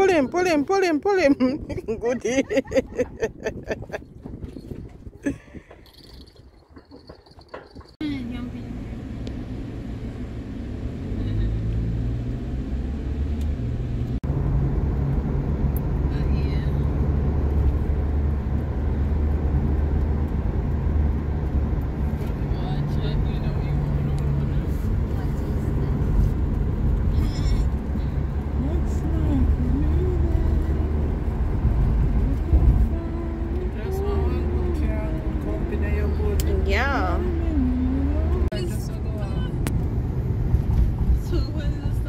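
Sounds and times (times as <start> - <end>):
car engine and road drone: 0.0 - 42.0.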